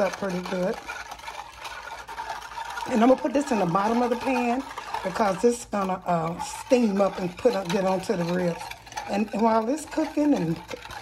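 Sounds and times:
whisk stirring sauce: 0.0 - 11.0
whisk ticking against dish: 0.0 - 11.0.

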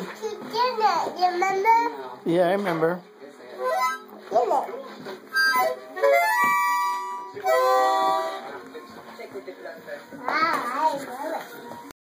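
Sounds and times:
child playing harmonica chords: 3.6 - 4.0, 5.3 - 8.5.

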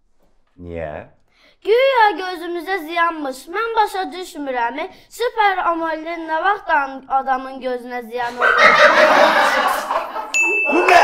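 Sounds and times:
man laughing: 8.3 - 11.0
high ding sound effect: 10.3 - 11.0.

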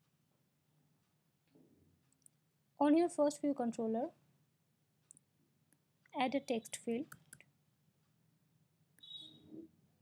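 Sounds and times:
faint mouse clicks: 1.5 - 2.4, 5.0 - 8.2
woman's voice: 6.2 - 7.1.

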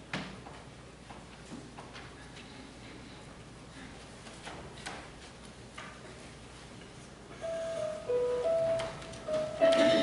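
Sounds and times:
quiet congregation room noise: 0.0 - 10.0.

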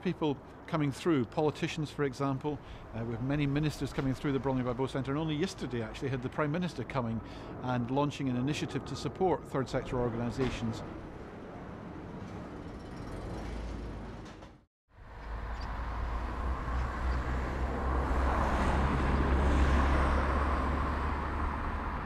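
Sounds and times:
road traffic rumble and hiss: 0.0 - 22.0.

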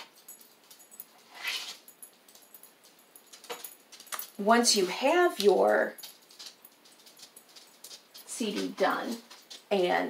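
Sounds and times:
beads rattling on paper plate: 0.1 - 10.0.

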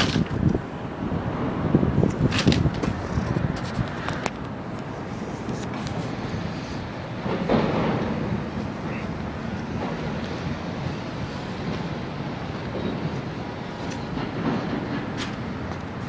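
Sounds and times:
traffic rumble: 0.0 - 16.0
wind: 0.0 - 16.0.

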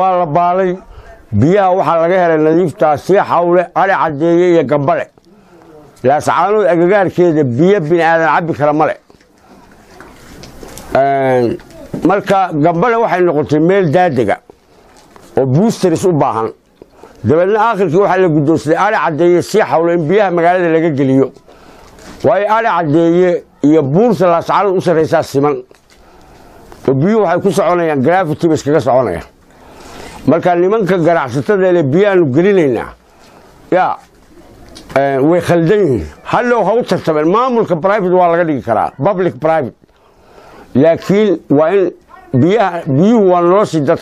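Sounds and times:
man speaking: 0.0 - 9.1, 10.9 - 14.5, 15.3 - 16.6, 17.2 - 21.4, 22.1 - 25.8, 26.8 - 29.4, 30.2 - 33.0, 33.7 - 34.1, 34.9 - 39.8, 40.7 - 44.0.

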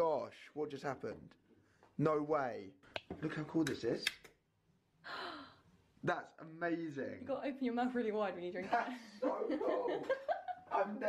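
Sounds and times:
breathy sigh: 5.0 - 5.6.

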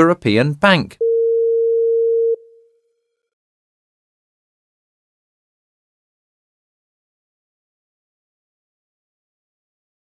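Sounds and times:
electronic beep: 1.0 - 2.6.

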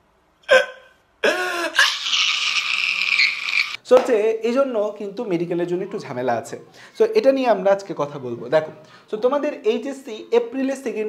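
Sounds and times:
man sobbing and wailing: 0.5 - 3.2.

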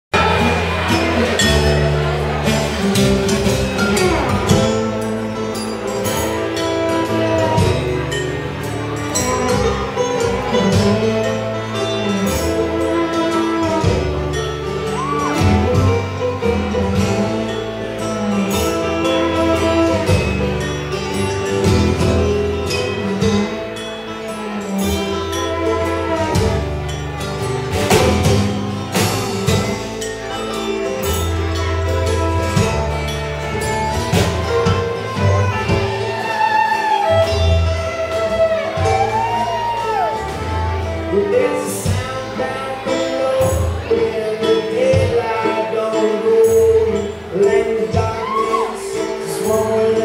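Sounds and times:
guitar: 0.0 - 50.0
upright bass: 0.0 - 50.0
banjo: 0.1 - 50.0
string band playing: 0.1 - 50.0
fiddle: 0.2 - 50.0.

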